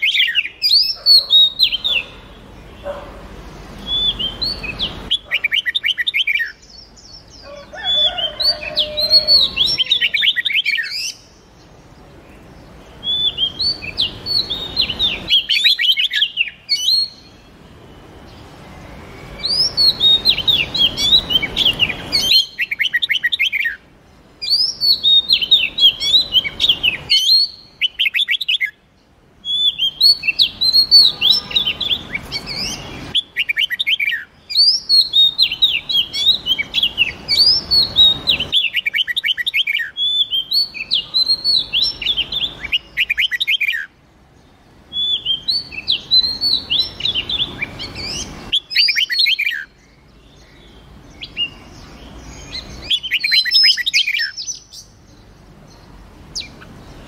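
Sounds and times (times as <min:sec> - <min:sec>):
background hiss: 0:00.0 - 0:57.0
birdsong whistles and chatter: 0:00.0 - 0:57.0.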